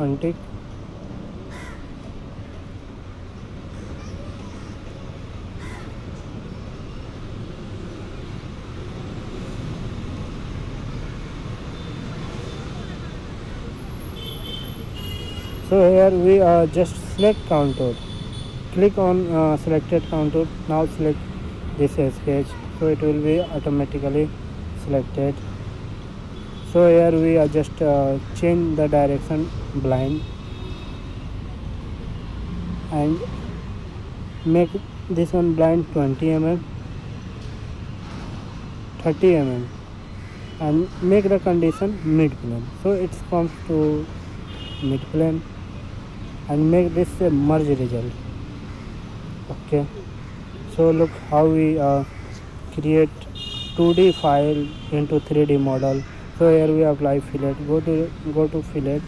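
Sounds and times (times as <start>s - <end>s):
person speaking: 21.8s - 25.4s, 40.6s - 44.1s, 52.7s - 59.0s.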